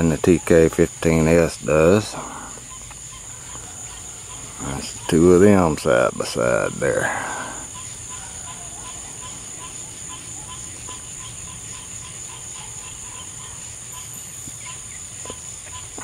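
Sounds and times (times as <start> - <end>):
crickets chirping chorus: 0.0 - 16.0
low pulsing insect call: 0.0 - 16.0.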